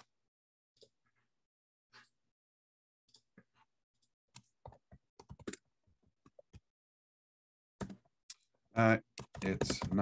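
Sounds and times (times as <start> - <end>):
typing on computer keyboard: 4.7 - 5.6, 9.2 - 10.0.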